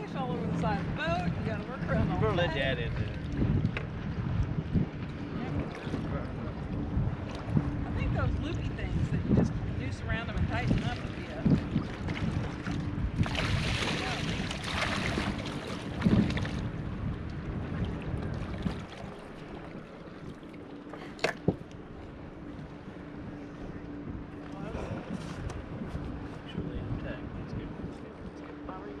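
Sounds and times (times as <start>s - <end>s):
low motor hum: 0.0s - 29.0s
wind on microphone: 0.0s - 29.0s
fish splashing and thrashing: 11.6s - 16.8s.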